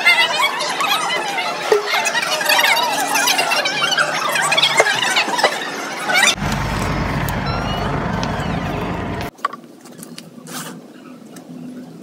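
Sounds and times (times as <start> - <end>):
steady low rumble: 6.4 - 9.3.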